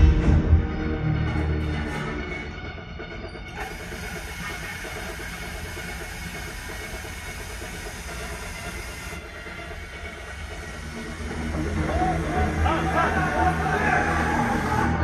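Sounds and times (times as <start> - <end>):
film music: 0.0 - 15.0
hiss of gas: 3.5 - 15.0.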